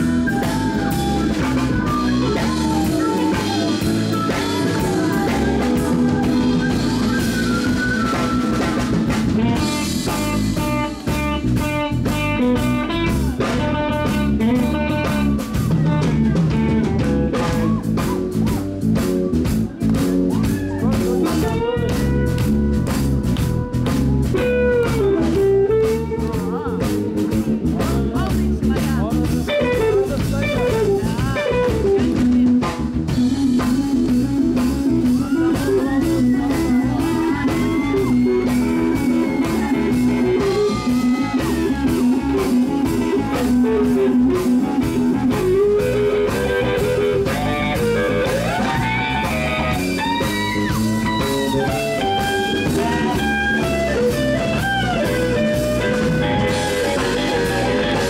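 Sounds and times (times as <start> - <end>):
drum kit: 0.0 - 58.0
electric bass: 0.0 - 58.0
electric guitar lead: 0.0 - 58.0.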